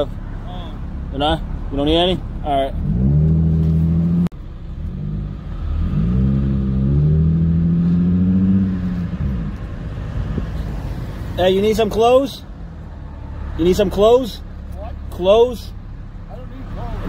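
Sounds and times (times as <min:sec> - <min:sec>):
car engine accelerating: 0:00.0 - 0:11.8.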